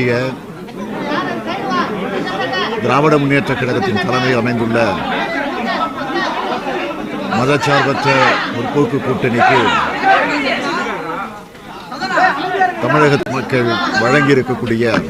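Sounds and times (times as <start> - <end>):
man speaking into microphones: 2.8 - 5.2, 7.3 - 10.0, 12.8 - 15.0.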